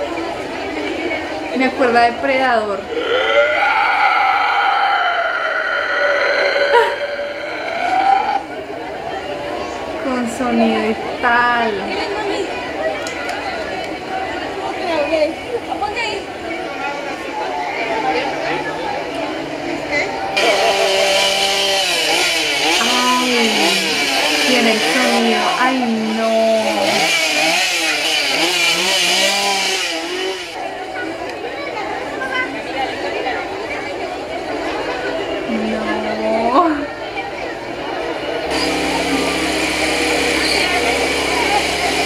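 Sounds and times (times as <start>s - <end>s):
crowd voices: 0.0s - 42.0s
chainsaw revving: 2.1s - 8.8s, 20.4s - 30.6s, 38.2s - 42.0s.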